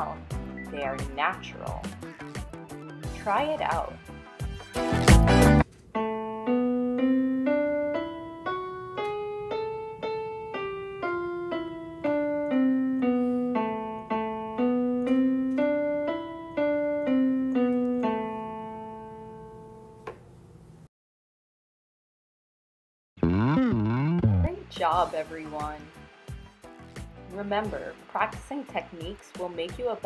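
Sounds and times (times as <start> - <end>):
piano playing a scale: 0.0 - 20.0, 23.2 - 28.3.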